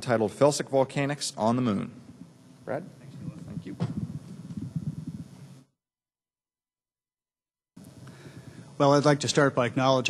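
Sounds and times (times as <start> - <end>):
microphone handling noise: 3.0 - 5.7.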